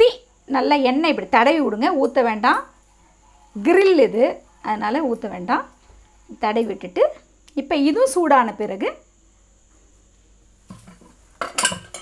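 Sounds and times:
utensils clinking against a pan: 10.8 - 12.0.

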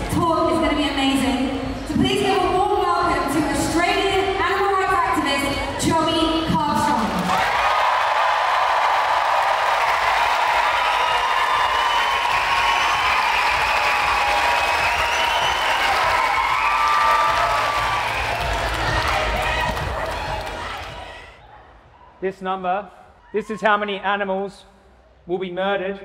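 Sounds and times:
audience applauding: 7.0 - 21.4
cheers and whoops: 7.2 - 21.4.

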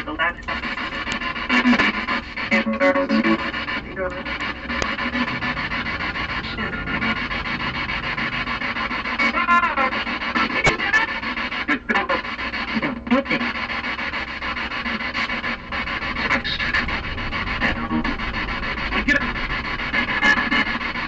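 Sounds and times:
hissing radio static: 0.0 - 21.0
radio music fragments: 0.0 - 21.0
radio voice fragments: 0.0 - 21.0.

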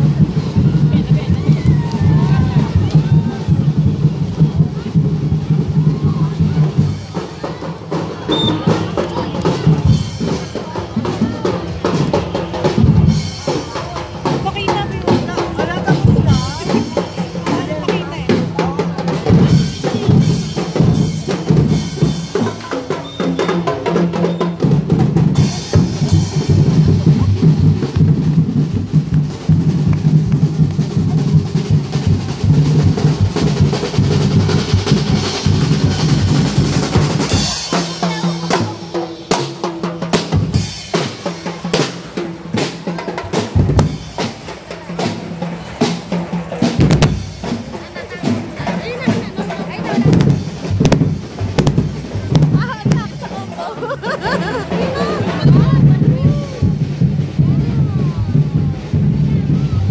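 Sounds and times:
bass drums: 0.0 - 59.9
crowd voices: 0.0 - 59.9
cymbals: 0.0 - 59.9
snare drums: 0.0 - 59.9.

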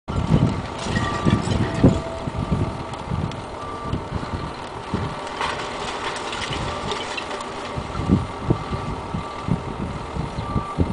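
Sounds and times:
garbage truck engine running: 0.1 - 10.9
wind buffeting microphone: 0.1 - 10.9.

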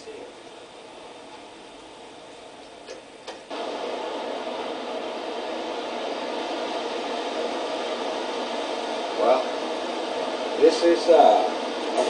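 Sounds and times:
tape hiss through tv speaker: 0.0 - 12.0.

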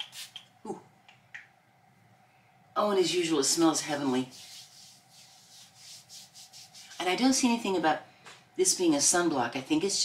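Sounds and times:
hands rubbing plastic bottle: 4.1 - 7.2.

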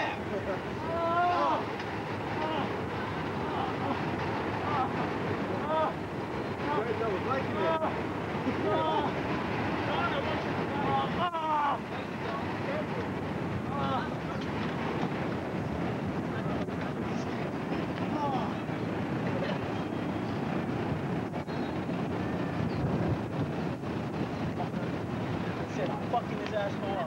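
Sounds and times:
city background noise: 0.0 - 27.0
wind on microphone: 0.0 - 27.0
people shouting: 0.8 - 1.7, 2.4 - 2.8, 8.6 - 9.2.

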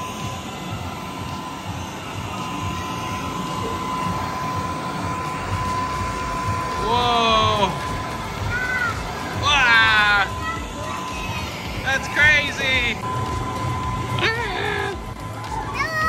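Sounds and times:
blower rushing air: 0.0 - 16.0
thin steady tone: 0.0 - 16.0.

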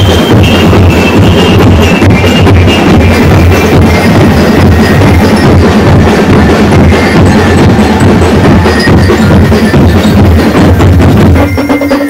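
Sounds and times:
street drum band playing: 0.0 - 12.0.

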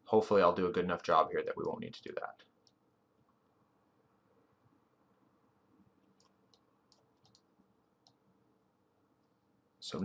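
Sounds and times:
faint computer mouse clicks: 6.2 - 8.2.

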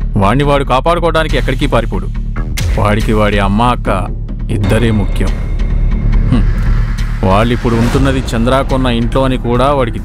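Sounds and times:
low drone background music: 0.0 - 10.0.

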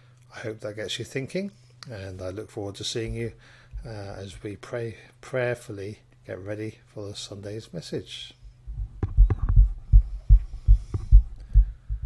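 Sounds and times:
microphone handling thumps: 8.7 - 12.0.

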